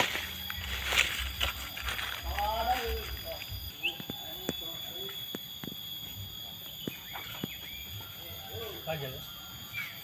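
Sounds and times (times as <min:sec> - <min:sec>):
steady high whine: 0:00.0 - 0:10.0.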